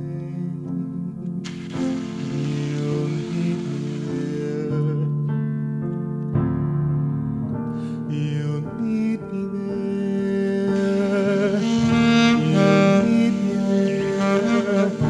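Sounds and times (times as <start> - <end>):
saxophone sustained notes: 0.0 - 5.1, 10.4 - 15.0
electric piano chords: 0.0 - 15.0.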